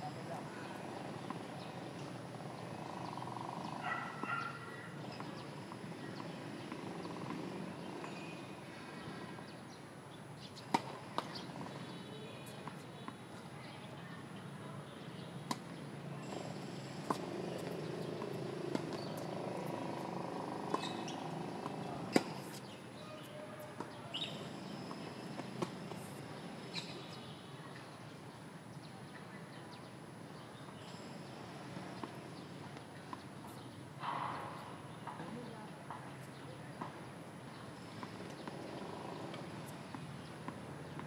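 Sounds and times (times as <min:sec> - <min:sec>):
tennis ball struck by rackets: 0:17.0 - 0:20.0.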